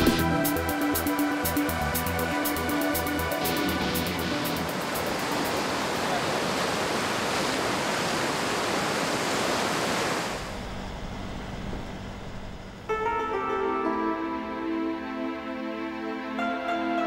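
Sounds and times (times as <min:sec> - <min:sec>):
river water splashing: 0:03.3 - 0:10.6.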